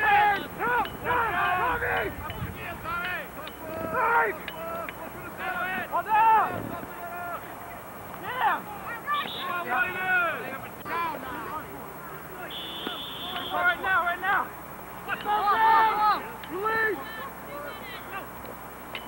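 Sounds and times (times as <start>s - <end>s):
players shouting in distance: 0.0s - 18.7s.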